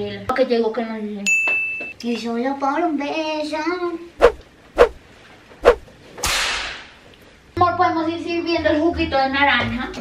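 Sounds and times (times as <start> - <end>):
hissing whoosh: 4.2 - 5.0, 5.6 - 5.9
whip-crack swish: 4.2 - 5.0, 5.6 - 6.9.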